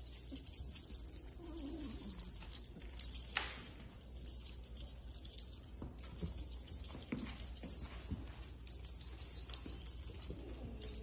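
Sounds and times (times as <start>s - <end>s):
high jingling: 0.0s - 11.0s.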